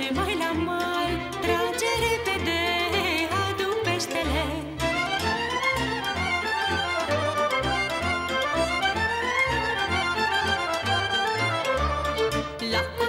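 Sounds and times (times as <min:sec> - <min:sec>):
fiddle playing quick runs: 0:00.0 - 0:13.0.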